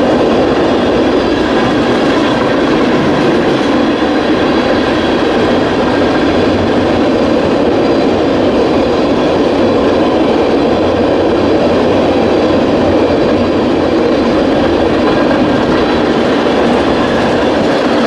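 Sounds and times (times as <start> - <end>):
freight train wheels rumbling on rails: 0.0 - 18.0.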